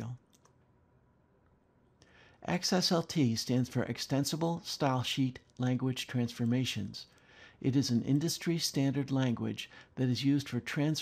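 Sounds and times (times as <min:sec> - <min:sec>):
person speaking: 0:00.0 - 0:00.5, 0:02.4 - 0:11.0.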